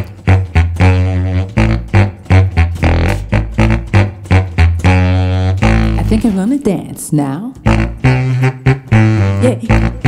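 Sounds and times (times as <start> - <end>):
contrabass saxophone bass line: 0.0 - 10.0.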